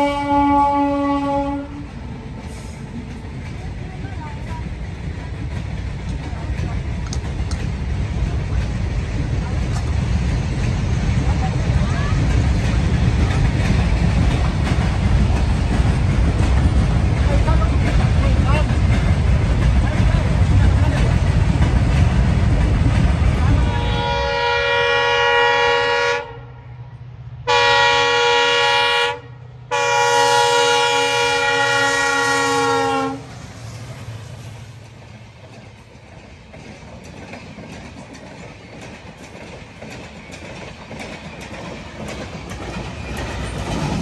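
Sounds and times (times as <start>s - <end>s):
locomotive horn: 0.0s - 2.3s, 23.5s - 26.7s, 27.4s - 33.3s
train rumbling: 0.0s - 44.0s.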